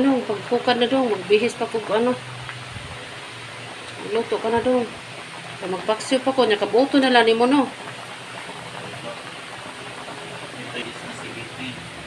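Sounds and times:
soup boiling and bubbling: 0.0s - 12.0s.

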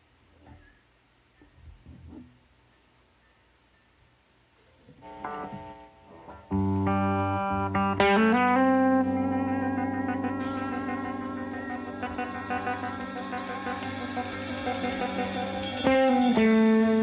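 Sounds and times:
electric guitar chords and notes: 5.0s - 17.0s.

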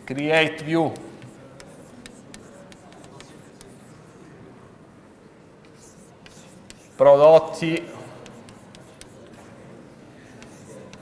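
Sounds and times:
chalk scratching on blackboard: 0.0s - 4.3s, 5.6s - 9.6s, 10.2s - 11.0s.

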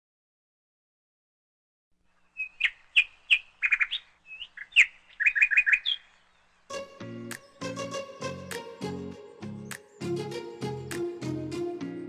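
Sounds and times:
songbird chirping and trilling: 2.1s - 12.0s
music: 6.7s - 12.0s.

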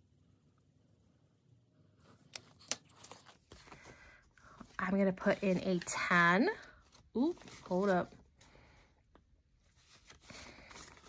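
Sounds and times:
paper banknotes rustling: 2.4s - 8.1s.

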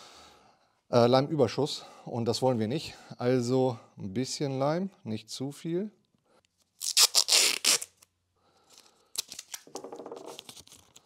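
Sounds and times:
tape ripping: 6.7s - 8.1s, 9.2s - 11.0s.

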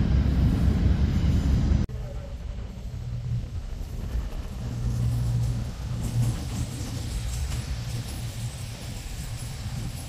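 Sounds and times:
train wheels rolling: 0.0s - 10.0s.

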